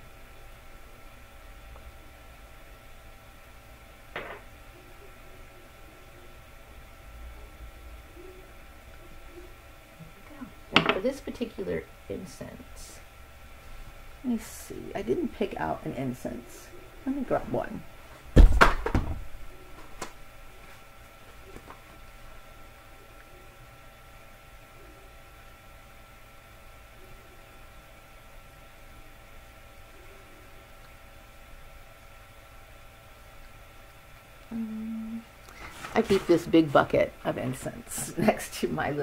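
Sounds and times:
faint electrical hum: 0:00.0 - 0:39.0
small movement noises: 0:17.3 - 0:23.4, 0:35.2 - 0:36.8
loud thump: 0:18.4 - 0:19.2.

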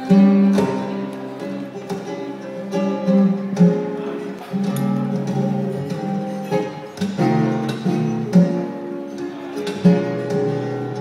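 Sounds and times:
flamenco guitars playing: 0:00.0 - 0:11.0.

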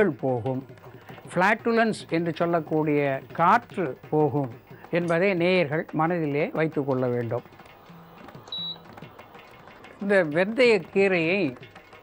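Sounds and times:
high-pitched electronic beep: 0:08.0 - 0:09.0.

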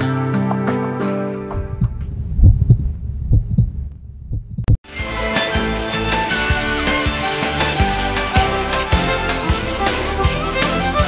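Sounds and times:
music: 0:00.0 - 0:01.6, 0:04.8 - 0:11.0
heartbeat thuds: 0:01.5 - 0:04.8.

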